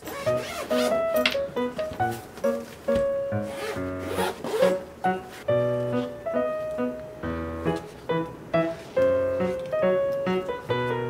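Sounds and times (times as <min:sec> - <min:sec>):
zipper rasping: 0:00.0 - 0:01.0, 0:03.4 - 0:04.8.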